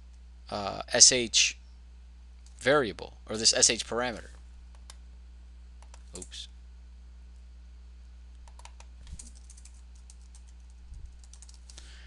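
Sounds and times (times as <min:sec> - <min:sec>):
low steady hum: 0:00.0 - 0:12.0
computer keyboard typing: 0:08.4 - 0:11.8.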